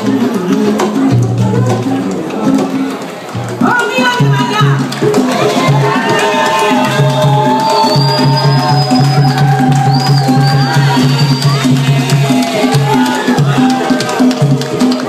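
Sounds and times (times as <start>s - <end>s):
afro-cuban dance music: 0.0s - 15.0s
bass line: 0.0s - 15.0s
wood-block percussion clicks: 2.0s - 15.0s.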